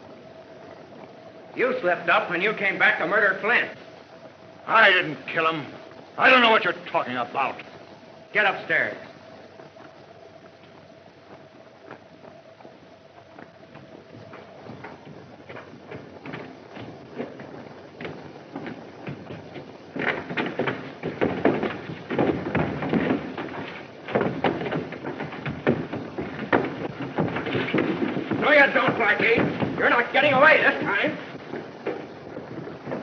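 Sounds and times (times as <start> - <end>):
footsteps on a staircase: 8.4 - 33.0.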